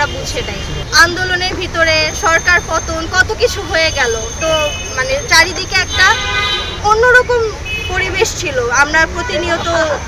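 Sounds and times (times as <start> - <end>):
woman talking: 0.0 - 6.2, 6.8 - 10.0.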